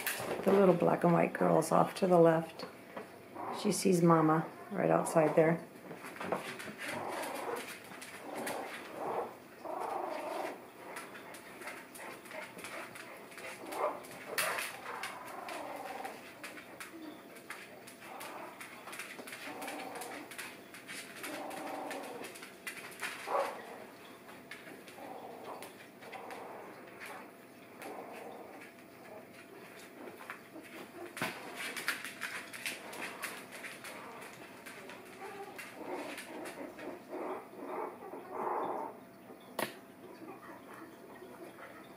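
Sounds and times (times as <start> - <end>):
light clicks and scratches: 4.9 - 37.5
puppies whimpering and squeaking: 6.6 - 39.5.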